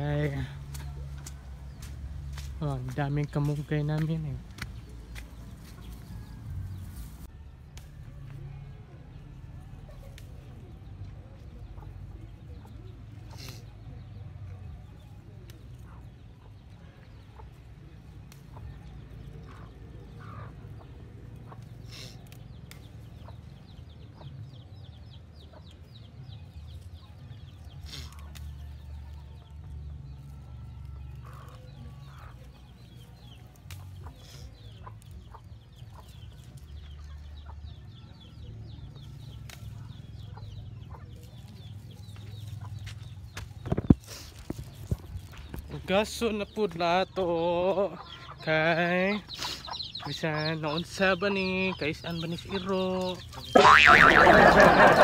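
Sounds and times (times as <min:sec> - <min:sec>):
chickens clucking: 0:31.2 - 0:32.6, 0:33.5 - 0:45.4, 0:47.7 - 0:55.0.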